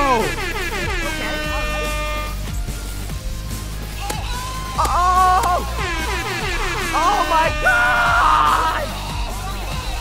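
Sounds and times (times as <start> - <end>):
air horn blasting: 0.0 - 2.6, 5.5 - 8.9
background music: 0.0 - 10.0.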